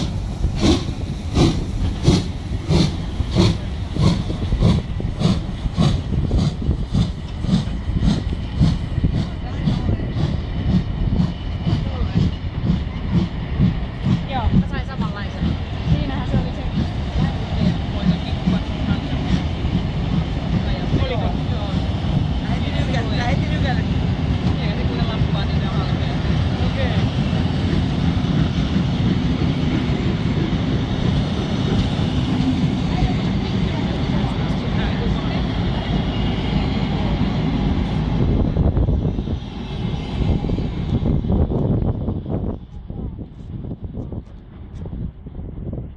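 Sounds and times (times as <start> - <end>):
train wheels rumbling on rails: 0.0 - 45.9.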